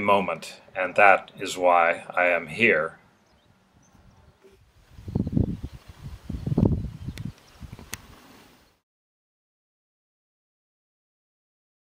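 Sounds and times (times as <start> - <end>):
wind buffeting microphone: 3.3 - 8.3.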